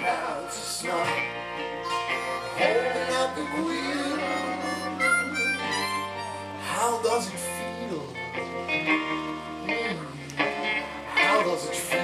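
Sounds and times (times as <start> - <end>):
bass guitar: 0.0 - 12.0
electric guitar: 0.0 - 12.0
harmonica playing: 0.2 - 9.6.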